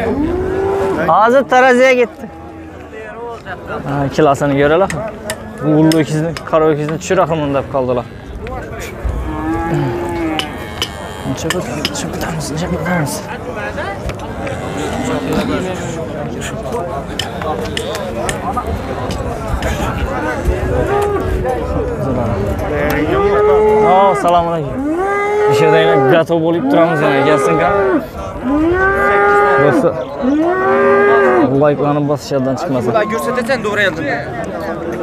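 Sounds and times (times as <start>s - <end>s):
cattle mooing: 0.0s - 1.2s, 9.2s - 12.1s, 14.4s - 16.0s, 22.9s - 31.5s.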